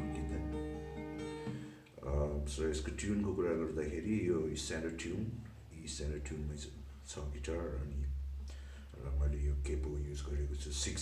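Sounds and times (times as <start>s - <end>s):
fingerpicked acoustic guitar: 0.0s - 1.9s.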